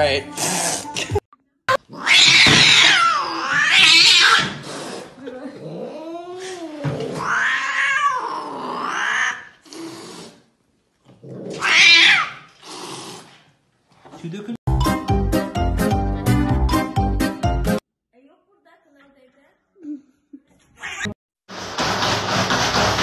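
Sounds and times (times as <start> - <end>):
cat yowling: 1.9 - 4.6, 7.0 - 9.6, 11.5 - 12.5.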